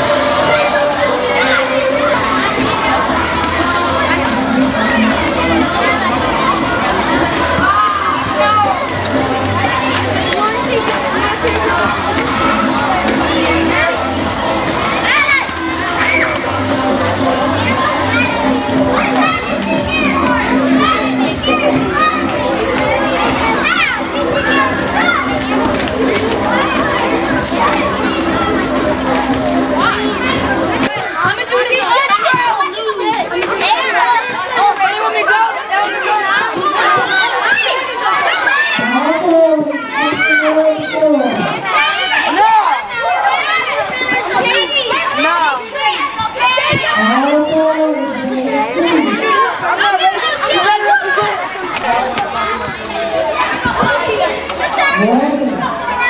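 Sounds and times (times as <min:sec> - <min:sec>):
children shouting and chattering: 0:00.0 - 0:56.0.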